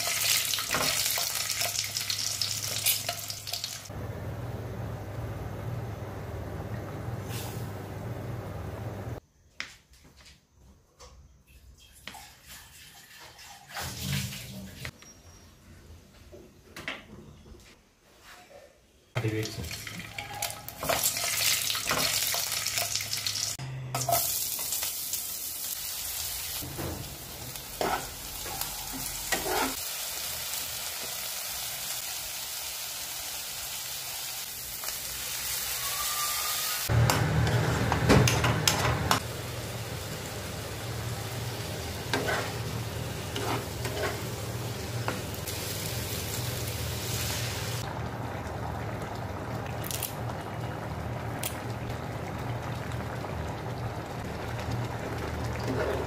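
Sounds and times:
food sizzling in oil: 0.0s - 3.9s, 19.7s - 37.9s, 39.1s - 47.8s
spatula scraping pan: 27.8s - 29.8s, 42.1s - 44.5s.

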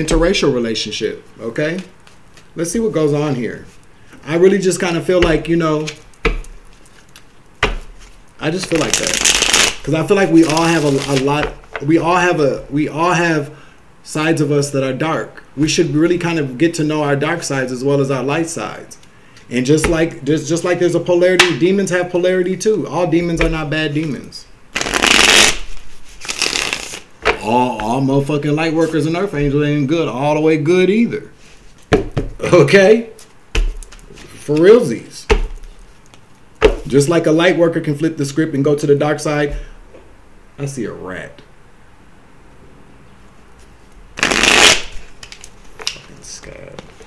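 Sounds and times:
cards being shuffled: 1.8s - 2.6s, 5.2s - 11.8s, 24.0s - 28.0s, 44.2s - 47.0s.

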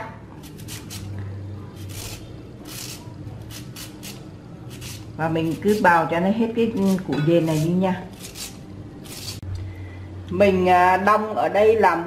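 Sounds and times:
beetroot scraping on grater: 0.4s - 1.2s, 1.8s - 9.4s.

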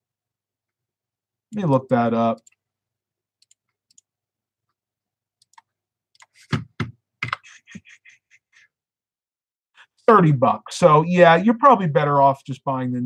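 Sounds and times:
computer keyboard typing: 3.4s - 4.1s, 5.4s - 6.4s.

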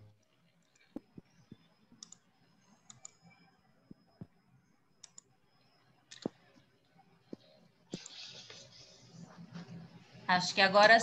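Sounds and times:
faint computer clicks: 5.0s - 5.3s, 6.1s - 6.4s.

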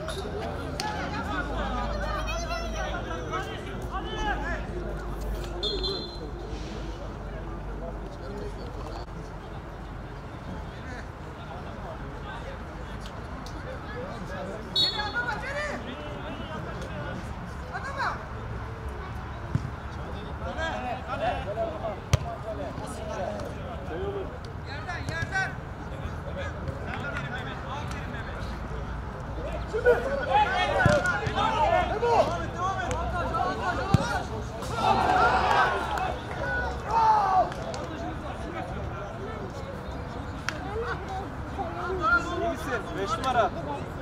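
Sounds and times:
players shouting: 29.4s - 38.4s.

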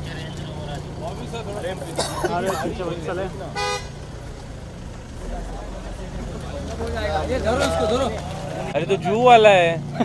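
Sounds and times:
car engine humming: 0.0s - 10.0s
car horn toot: 3.5s - 4.0s.

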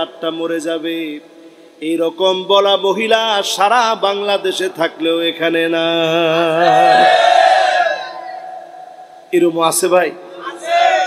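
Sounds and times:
man chanting over loudspeaker: 0.0s - 7.2s.

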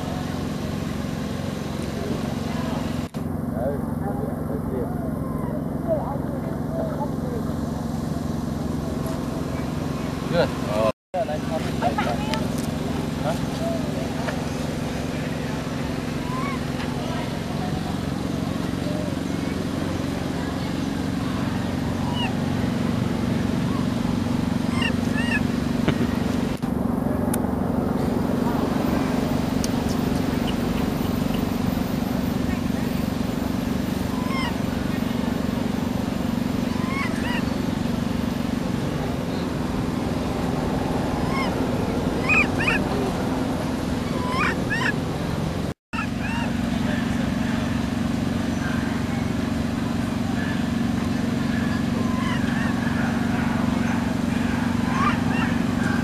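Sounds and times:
low engine-like hum: 0.0s - 56.0s.

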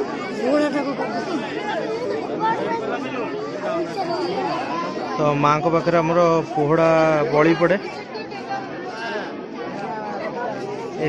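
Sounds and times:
overlapping crowd chatter: 0.0s - 11.0s.

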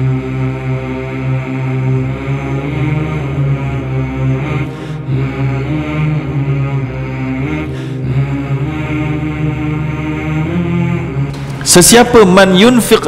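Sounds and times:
steady low drone: 0.0s - 12.9s
droning chant: 0.0s - 13.0s.

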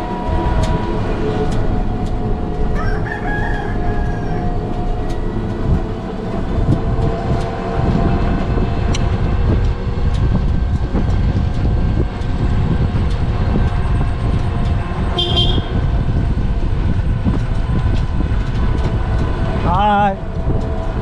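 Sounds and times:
vehicle rumble: 0.0s - 21.0s
wind on microphone: 0.0s - 21.0s
short horn toot: 15.2s - 15.8s.

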